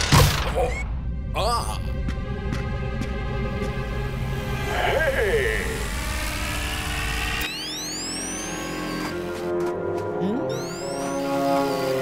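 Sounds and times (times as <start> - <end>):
high-pitched electronic sweeps: 7.5 - 9.2, 10.2 - 12.0
cartoon music: 10.2 - 12.0.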